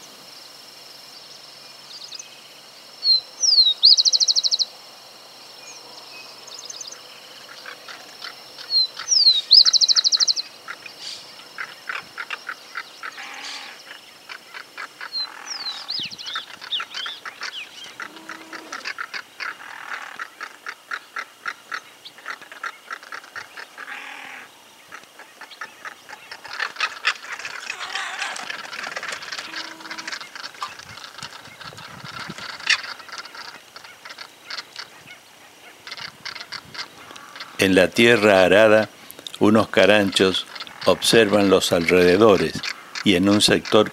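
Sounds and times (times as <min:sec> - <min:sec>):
birds calling in rattling series: 0:03.0 - 0:04.7, 0:06.5 - 0:43.9
high bird trill: 0:03.0 - 0:04.7, 0:06.2 - 0:43.9.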